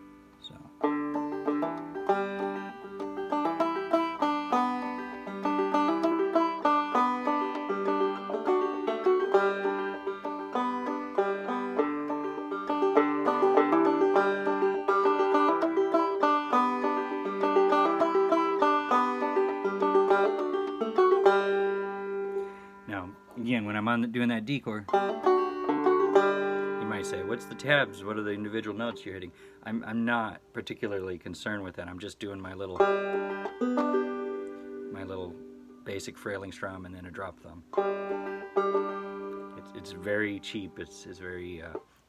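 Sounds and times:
banjo strumming: 0.0s - 42.0s.

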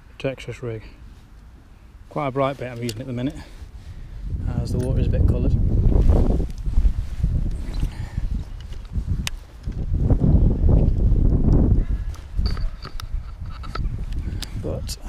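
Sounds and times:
clothing and grass rustling: 1.0s - 14.8s
wind rumbling on microphone: 2.9s - 15.0s.

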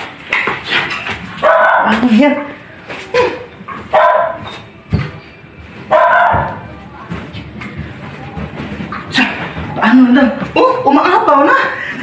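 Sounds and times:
dog barking loudly: 1.4s - 2.0s, 3.9s - 4.5s, 5.9s - 6.6s.

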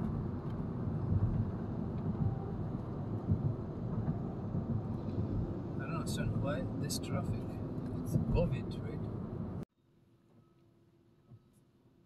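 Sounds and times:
car engine rumble: 0.0s - 9.6s
road noise inside car: 0.0s - 12.0s.

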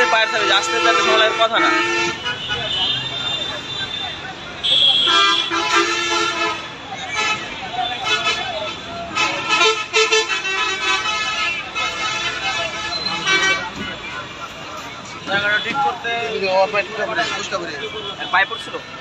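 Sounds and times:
people talking loudly: 0.0s - 19.0s
traffic: 0.0s - 19.0s
vehicle horns tooting: 0.0s - 19.0s.

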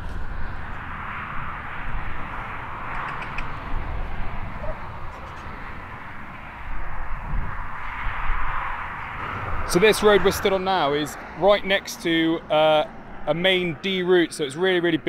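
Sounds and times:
passing road traffic: 0.0s - 15.0s.

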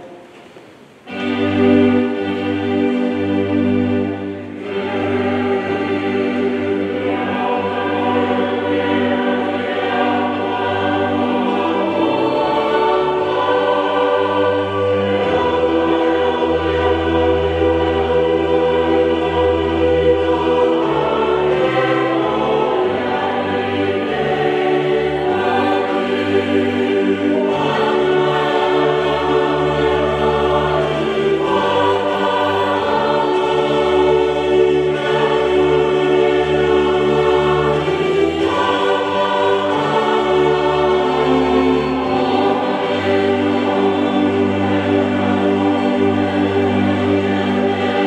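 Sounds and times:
choir singing a hymn: 0.0s - 48.0s.

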